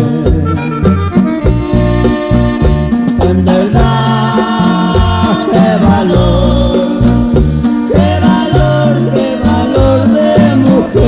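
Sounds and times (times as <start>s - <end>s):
button accordion melody: 0.0s - 11.0s
steady bass line: 0.0s - 11.0s.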